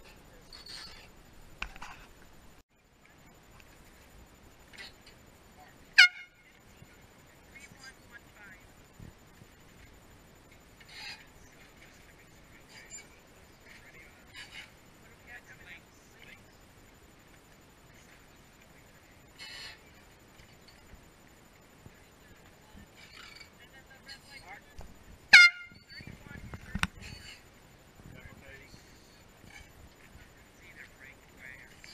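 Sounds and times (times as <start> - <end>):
short horn blast: 25.3 - 25.8.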